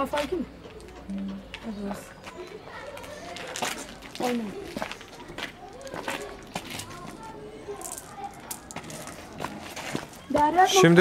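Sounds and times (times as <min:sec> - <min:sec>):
children talking quietly: 0:00.0 - 0:11.0.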